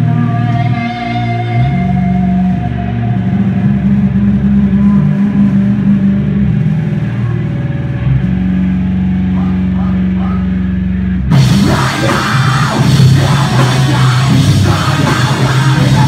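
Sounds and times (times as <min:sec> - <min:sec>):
electric guitar and bass droning: 0:00.0 - 0:16.0.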